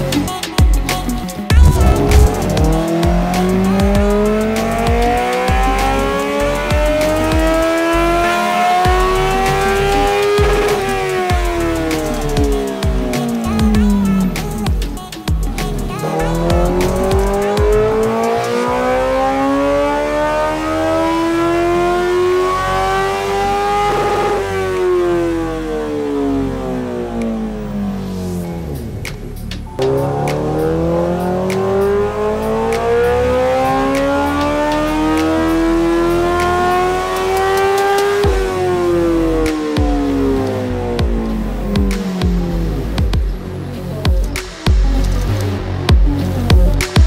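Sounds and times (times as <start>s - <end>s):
motorcycle engine revving: 1.5s - 15.0s, 16.4s - 27.2s, 29.8s - 47.0s.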